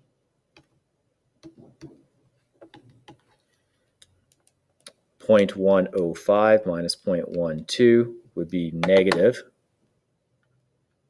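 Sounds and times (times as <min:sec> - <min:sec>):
stylus tapping on pen tablet: 0:01.4 - 0:02.0, 0:02.6 - 0:03.3, 0:08.8 - 0:09.2.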